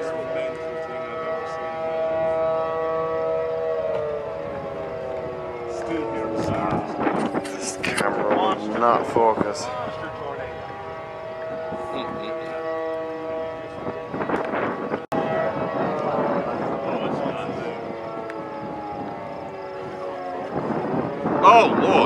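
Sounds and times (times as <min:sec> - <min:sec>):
warning sirens wailing: 0:00.0 - 0:22.0
voices in background: 0:15.3 - 0:22.0.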